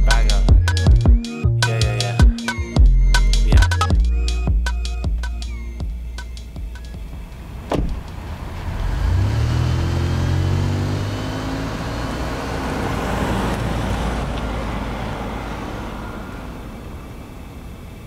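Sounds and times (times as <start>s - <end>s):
car engine revving: 6.9s - 18.0s
car passing by: 7.5s - 17.8s.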